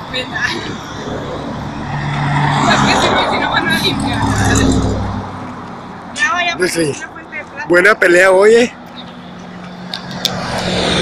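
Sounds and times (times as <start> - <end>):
car driving past: 0.8 - 5.7.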